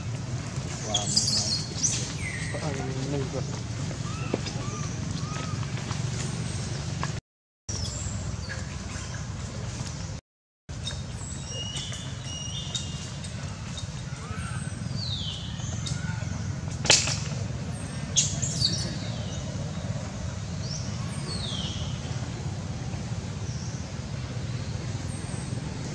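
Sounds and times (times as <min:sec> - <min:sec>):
birds chirping: 0:00.0 - 0:25.9
steady low rumble: 0:14.8 - 0:25.9
sharp crack: 0:16.7 - 0:17.5.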